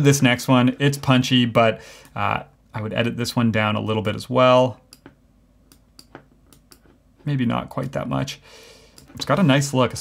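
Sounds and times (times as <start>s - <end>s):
computer mouse clicks: 4.9s - 7.0s, 8.9s - 9.3s.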